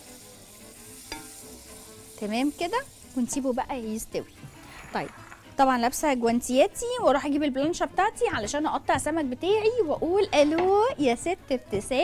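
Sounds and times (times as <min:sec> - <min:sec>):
rice and onion sizzling in pot: 0:00.0 - 0:11.0
wooden spoon stirring: 0:04.2 - 0:05.8.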